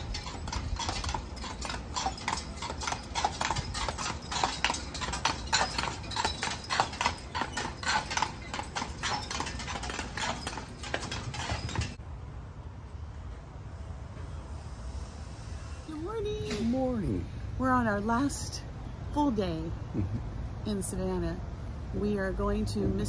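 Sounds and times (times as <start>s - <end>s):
horse hooves clip-clopping on asphalt: 0.0s - 12.0s.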